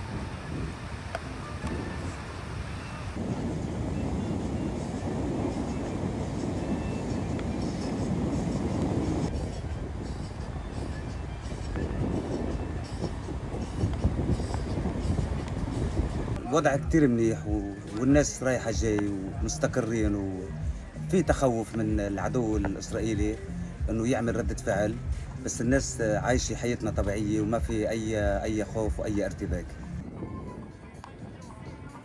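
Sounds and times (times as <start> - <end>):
surf rumble: 0.0 - 30.0
wind on microphone: 0.0 - 32.0.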